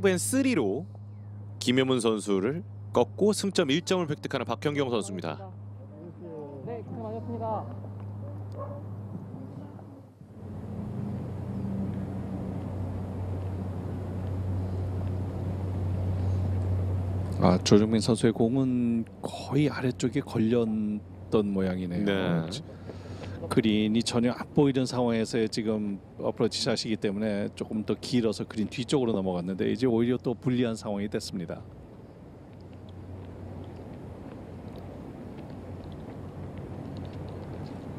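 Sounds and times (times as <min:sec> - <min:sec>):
constant low hum: 0:00.0 - 0:37.9
low outdoor rumble: 0:00.0 - 0:37.9.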